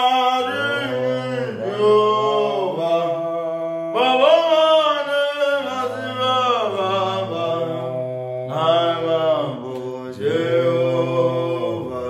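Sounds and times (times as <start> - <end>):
two men singing a cappella: 0.0 - 12.0.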